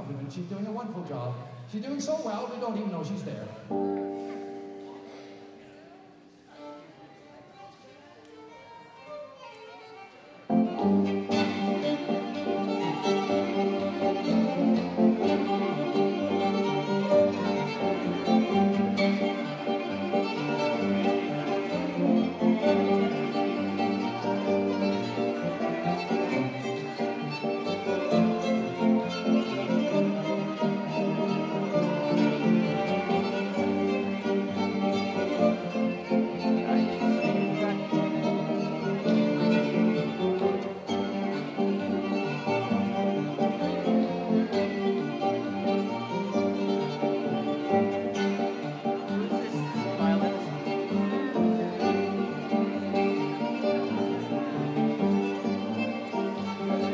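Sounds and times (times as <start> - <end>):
fiddle playing a tune: 0.0 - 56.9
musical accompaniment: 1.8 - 56.9.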